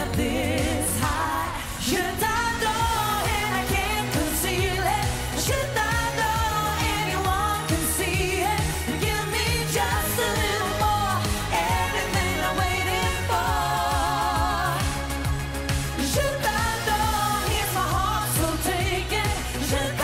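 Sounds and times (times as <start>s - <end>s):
woman singing with vibrato: 0.0s - 15.1s, 16.0s - 20.0s
electronic dance beat and bass: 0.0s - 20.0s.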